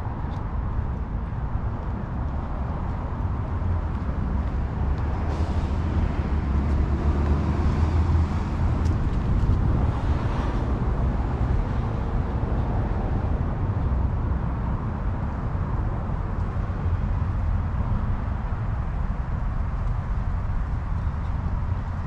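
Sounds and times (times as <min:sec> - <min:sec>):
steady low rumble: 0:00.0 - 0:22.0.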